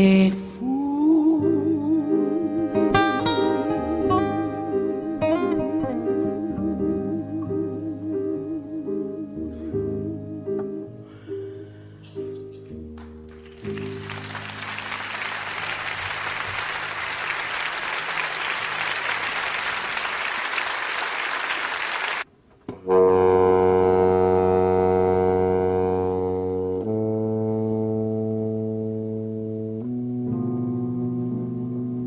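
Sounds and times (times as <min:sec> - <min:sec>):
saxophones playing held chords: 0:01.4 - 0:12.6, 0:22.8 - 0:32.0
audience applause: 0:13.0 - 0:22.3.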